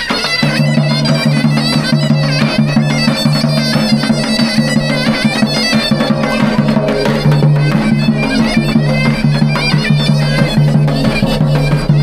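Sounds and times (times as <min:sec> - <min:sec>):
bagpipe melody over drone: 0:00.0 - 0:12.0
bass drum strokes: 0:00.6 - 0:12.0.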